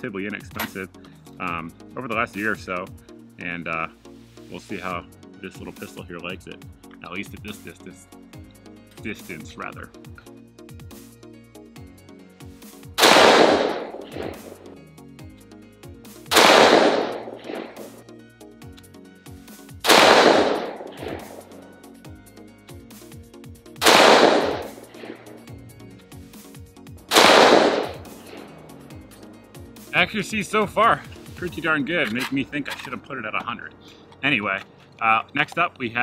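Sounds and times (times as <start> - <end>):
pistol gunshots: 13.0 - 14.7, 16.3 - 18.0, 19.8 - 21.6, 23.8 - 25.5, 27.1 - 28.6.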